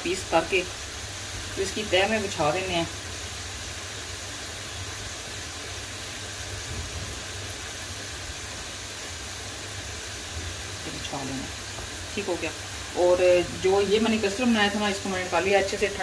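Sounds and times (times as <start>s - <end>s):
hiss: 0.0s - 16.0s.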